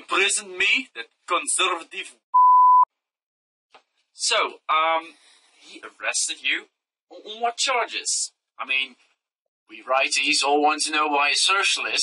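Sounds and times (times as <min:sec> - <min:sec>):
censor bleep tone: 0:02.4 - 0:02.9.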